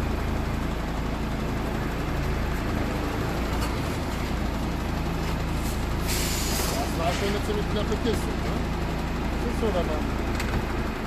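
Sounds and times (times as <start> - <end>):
diesel engine running: 0.0 - 11.0
air brakes hissing: 5.5 - 7.2.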